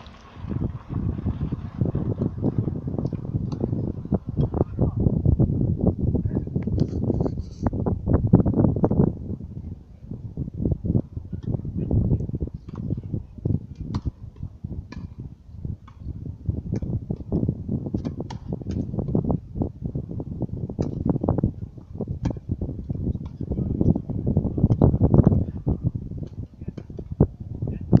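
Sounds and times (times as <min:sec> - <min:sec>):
rackets striking tennis ball: 0:14.9 - 0:15.2, 0:15.8 - 0:17.3, 0:22.2 - 0:22.6.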